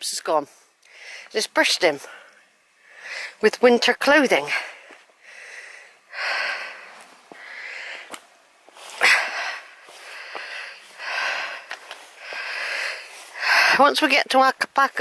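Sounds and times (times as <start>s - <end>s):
woman breathing heavily: 0.7s - 1.4s, 2.0s - 3.5s, 4.4s - 14.0s.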